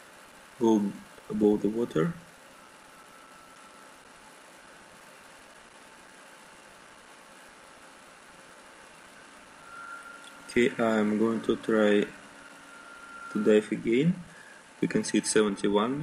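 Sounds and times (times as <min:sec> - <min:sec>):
swimming pool hall hiss: 0:00.0 - 0:02.2
thin faint tone: 0:00.6 - 0:04.1, 0:09.1 - 0:16.0.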